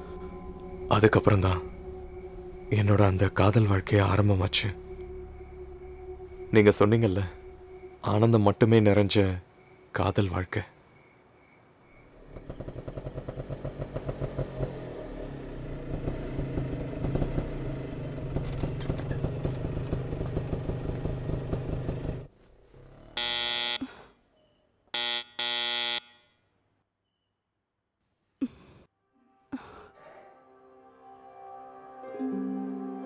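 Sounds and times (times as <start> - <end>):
small engine puttering: 12.2 - 23.2
loud electric buzzing tone: 23.2 - 23.8, 25.0 - 26.2.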